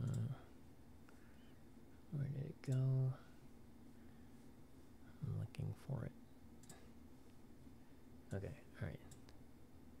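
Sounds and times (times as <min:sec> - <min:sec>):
computer mouse clicks: 0:00.0 - 0:00.3, 0:06.6 - 0:06.8.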